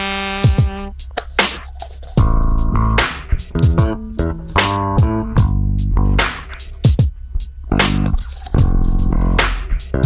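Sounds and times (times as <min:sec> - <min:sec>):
drum beat with kick thumps: 0:00.1 - 0:10.0
bass and guitar music: 0:00.5 - 0:10.0.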